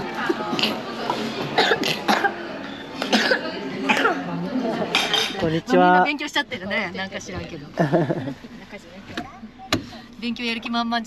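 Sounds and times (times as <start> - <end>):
cutlery and dishes clinking: 4.9 - 5.5.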